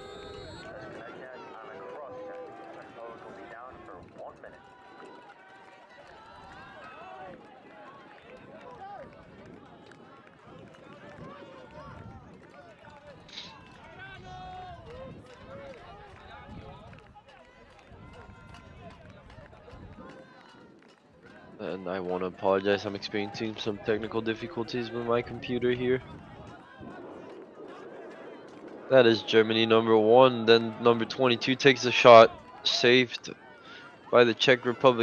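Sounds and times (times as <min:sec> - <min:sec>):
players and spectators shouting: 0:00.0 - 0:35.0.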